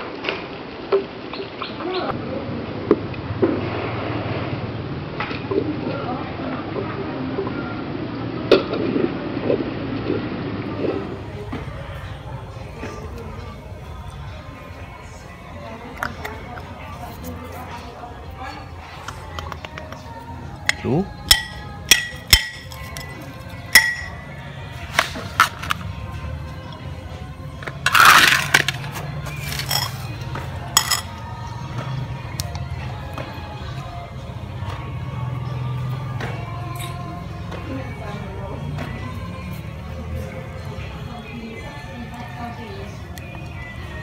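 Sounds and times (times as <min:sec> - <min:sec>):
sharp clinks on ceramic plate: 0:20.7 - 0:23.2, 0:23.8 - 0:24.3, 0:30.8 - 0:31.2.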